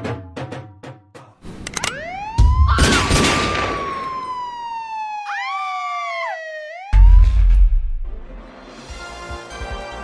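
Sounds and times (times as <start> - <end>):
siren wail falling in pitch: 1.8 - 8.0.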